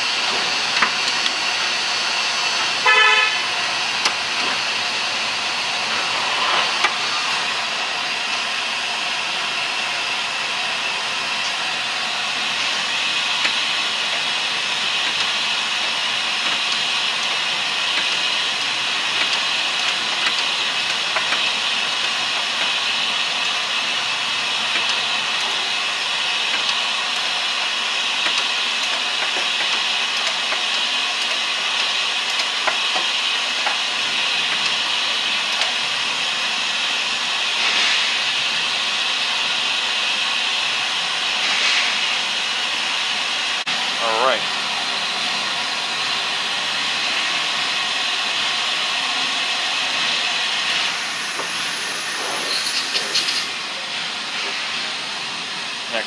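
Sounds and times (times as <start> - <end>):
loud rushing hiss: 3.3 - 10.8, 41.2 - 56.0.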